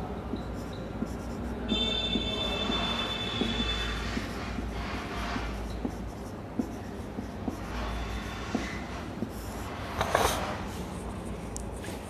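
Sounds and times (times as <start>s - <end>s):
marker rasping on whiteboard: 0.0s - 12.0s
high-pitched marker squeal: 0.3s - 10.4s.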